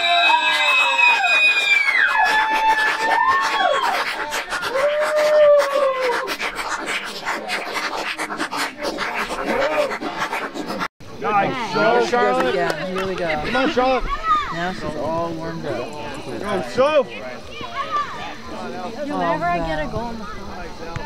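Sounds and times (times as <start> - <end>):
high voices shouting: 0.0 - 6.4.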